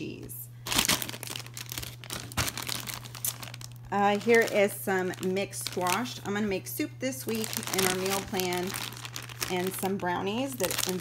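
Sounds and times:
plastic packaging crinkling: 0.6 - 11.0.

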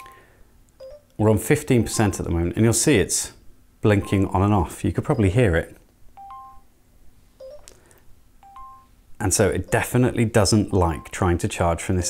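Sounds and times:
phone charging chime: 0.8 - 1.2, 1.8 - 2.3, 4.0 - 4.4, 6.2 - 6.7, 7.4 - 7.8, 8.4 - 9.0, 9.6 - 11.2.

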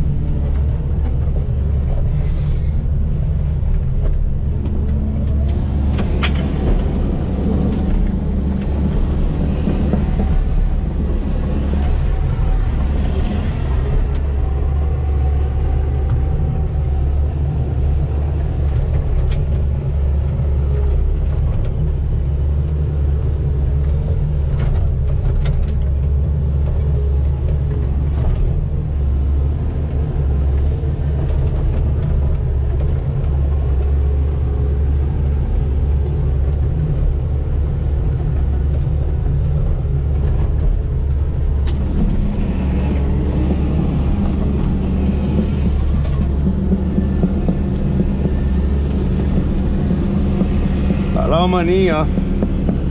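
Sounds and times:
excavator diesel engine drone: 0.0 - 52.9.

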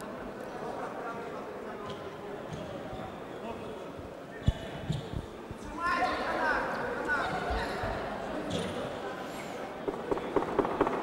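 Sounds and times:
background voices in a hall: 0.0 - 11.0.

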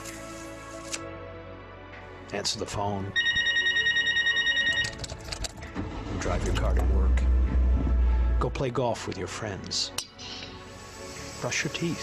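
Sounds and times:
telephone bell ringing: 3.2 - 5.0.

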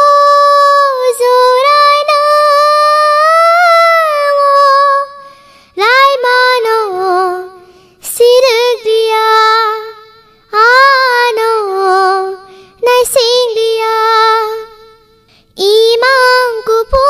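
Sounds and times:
child singing: 0.0 - 5.2, 5.8 - 15.0, 15.6 - 17.0.

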